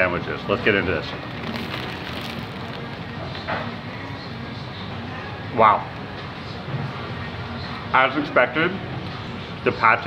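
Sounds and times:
bread crust crackling when bitten: 0:01.3 - 0:03.4.

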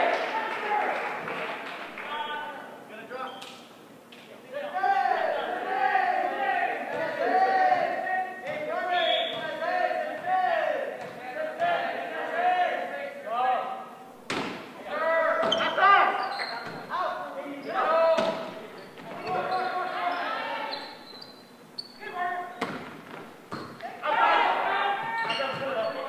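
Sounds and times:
players shouting in echoing hall: 0:00.0 - 0:03.3, 0:04.4 - 0:21.3, 0:22.0 - 0:26.0
volleyball struck with smacks: 0:14.3 - 0:14.8.

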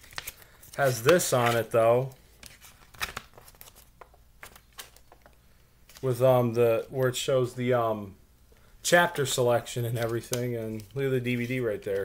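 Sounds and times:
plastic rustling: 0:09.2 - 0:12.0.

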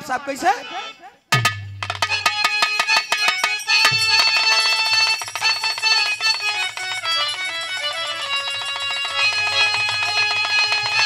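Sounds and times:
drumming: 0:01.3 - 0:11.0
keyboard melody of held notes: 0:02.0 - 0:11.0.

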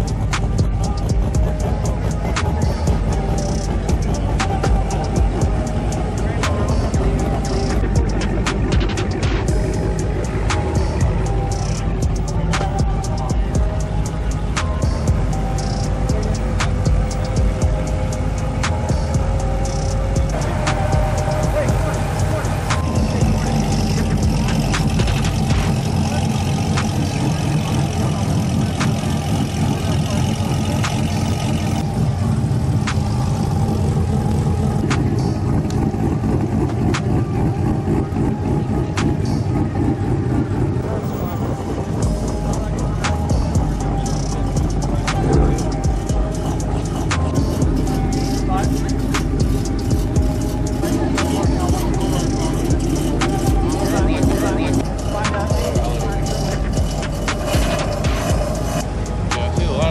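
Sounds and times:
music: 0:00.0 - 0:59.9
sports car engines passing: 0:00.0 - 0:59.9
voices: 0:00.0 - 0:59.9.

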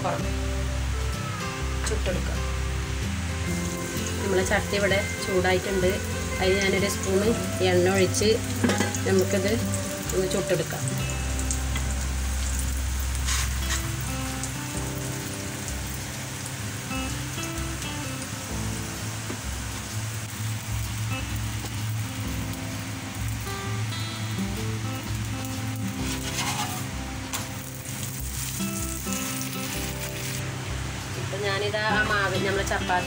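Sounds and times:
background music: 0:00.0 - 0:33.0
flatbread sizzling in a frying pan: 0:00.2 - 0:33.0.

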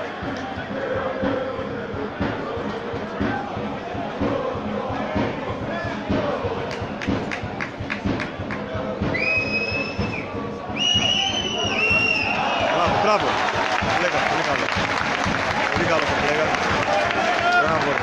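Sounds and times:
football crowd noise: 0:00.0 - 0:18.0
referee's whistle blasts: 0:09.2 - 0:12.9.

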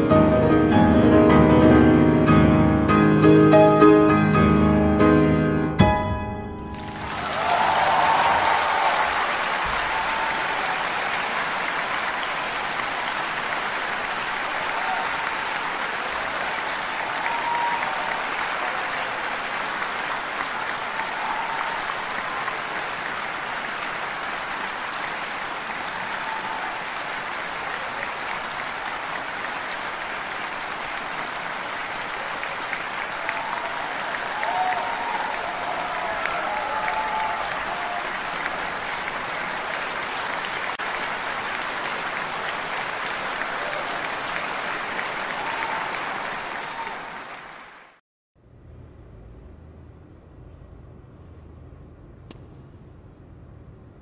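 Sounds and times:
audience applauding: 0:06.7 - 0:48.0.

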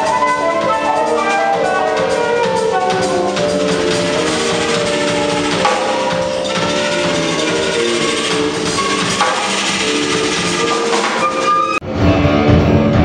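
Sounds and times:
flute melody: 0:00.0 - 0:12.1
drum kit: 0:00.0 - 0:13.0
electric bass: 0:11.8 - 0:13.0.

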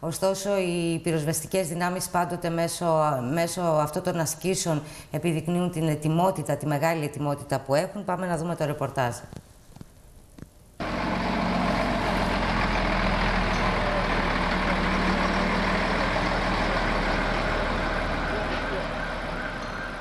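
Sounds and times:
fire truck engine running: 0:10.8 - 0:20.0
background voices: 0:13.3 - 0:19.0.

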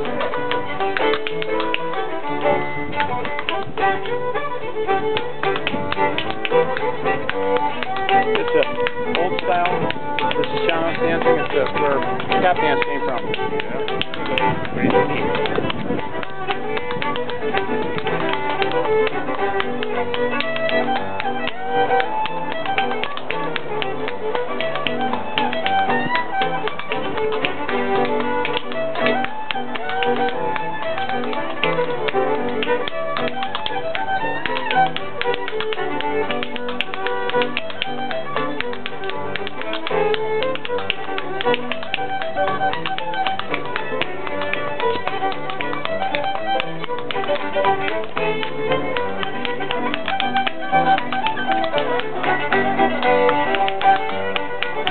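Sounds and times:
dance steps tapping on floor: 0:00.0 - 0:54.9
fiddle: 0:00.0 - 0:54.9.

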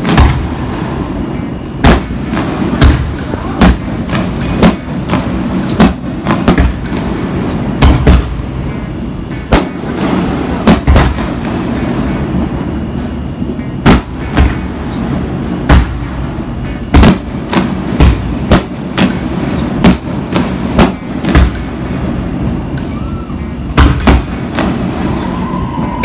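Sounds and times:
fireworks bangs: 0:00.0 - 0:26.0
steady din: 0:00.0 - 0:26.0.

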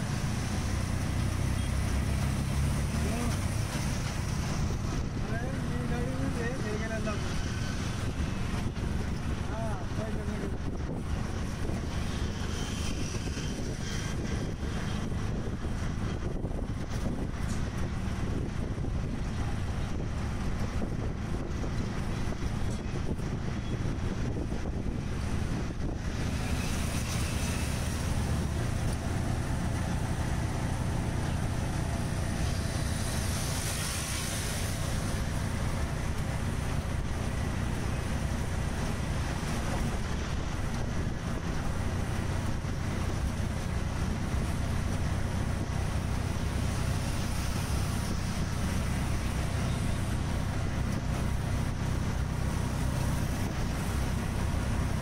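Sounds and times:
auto-rickshaw engine running: 0:00.0 - 0:55.0
road rush: 0:00.0 - 0:55.0
wind on microphone: 0:07.1 - 0:55.0.

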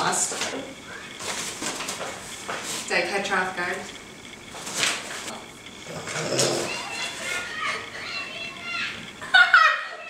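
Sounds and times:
women laughing: 0:09.2 - 0:10.0.

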